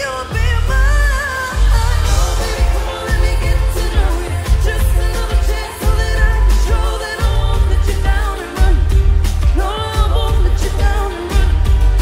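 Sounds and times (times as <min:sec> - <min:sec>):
heavy bass beat: 0:00.0 - 0:12.0
live pop song with vocals: 0:00.0 - 0:12.0.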